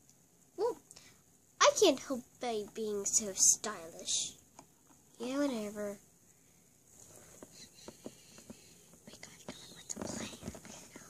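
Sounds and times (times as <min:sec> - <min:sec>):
child whispering: 0:00.6 - 0:00.9, 0:07.5 - 0:11.0.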